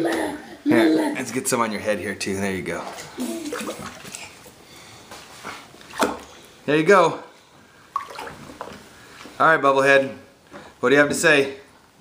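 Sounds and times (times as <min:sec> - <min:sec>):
bath water sloshing: 0:02.2 - 0:06.6, 0:07.6 - 0:09.3.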